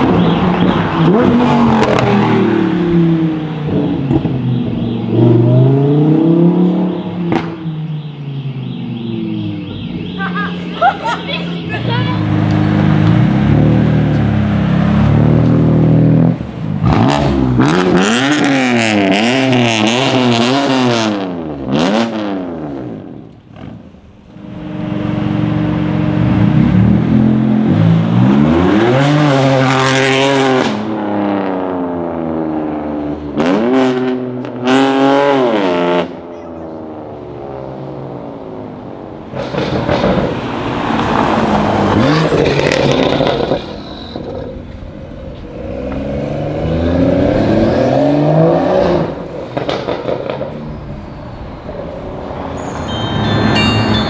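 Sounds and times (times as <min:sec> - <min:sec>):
sports cars revving past: 0:00.0 - 0:10.1, 0:11.0 - 0:54.0.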